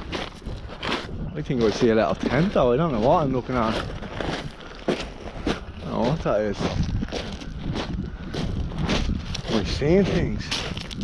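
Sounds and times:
footsteps crunching over stones: 0.0s - 11.0s.

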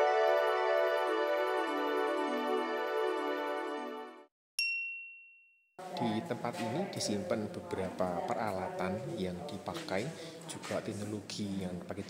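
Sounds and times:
intro music: 0.0s - 4.3s
high-pitched chime ding: 4.6s - 5.6s.

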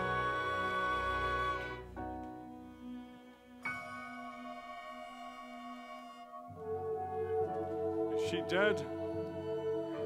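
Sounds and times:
orchestra holding sustained chord: 2.7s - 10.0s.

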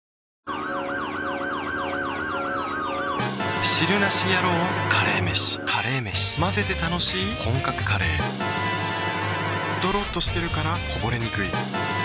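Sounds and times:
police siren yelp and wail: 0.5s - 5.7s
music: 1.8s - 12.0s.

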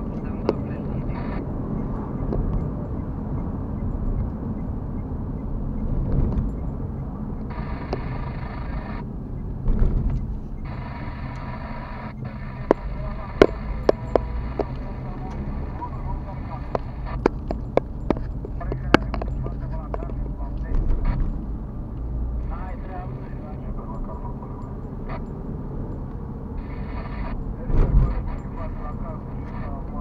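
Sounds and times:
sharp irregular clicks: 0.0s - 29.9s
car road and engine noise: 0.0s - 30.0s.

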